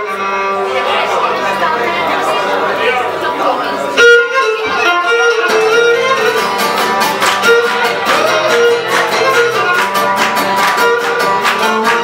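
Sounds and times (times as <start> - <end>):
bowed lyra melody: 3.8 - 12.0
plucked lute: 4.0 - 12.0.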